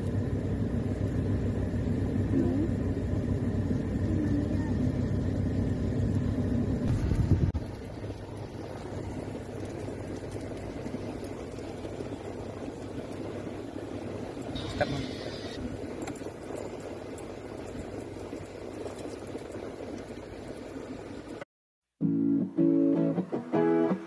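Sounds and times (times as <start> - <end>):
car engine rumble: 0.0 - 21.4.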